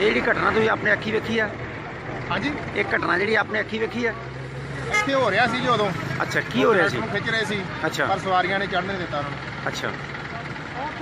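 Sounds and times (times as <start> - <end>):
vehicle engine droning: 0.0 - 11.0
man talking: 4.9 - 10.0.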